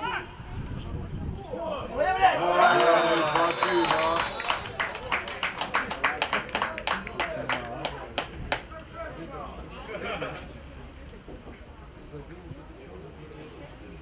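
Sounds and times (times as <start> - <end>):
whistle tone: 2.6 - 4.8
hand claps: 2.8 - 8.7.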